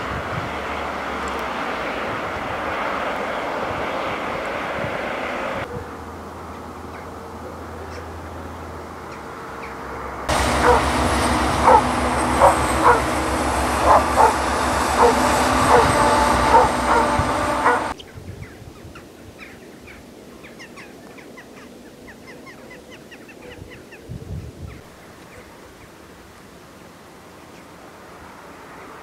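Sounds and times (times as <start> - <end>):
heavy road traffic: 0.0 - 18.0, 25.9 - 29.0
dog barking: 5.7 - 6.0, 10.6 - 11.0, 11.6 - 17.9.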